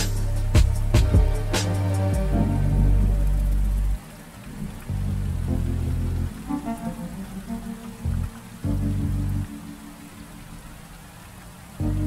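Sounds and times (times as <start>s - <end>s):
soft relaxing music: 0.0s - 12.0s
steady rain falling: 0.0s - 12.0s.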